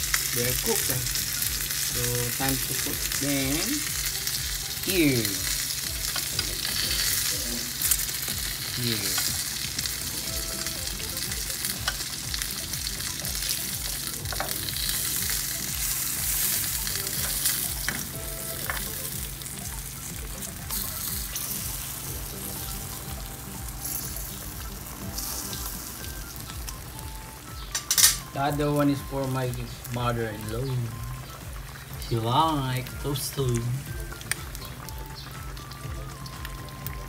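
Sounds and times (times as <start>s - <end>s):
fish sizzling in a pan: 0.0s - 37.0s.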